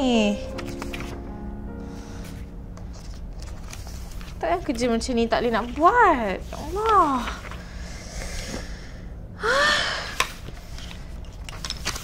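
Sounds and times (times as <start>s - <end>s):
woman exhaling: 8.2s - 10.3s
woman groaning: 9.4s - 10.1s.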